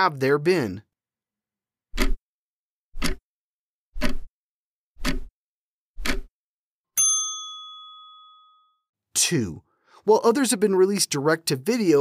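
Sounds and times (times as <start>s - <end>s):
clock ticking: 2.0s - 2.2s, 3.0s - 3.2s, 5.0s - 5.3s, 6.0s - 6.3s
bell ding: 7.0s - 8.9s.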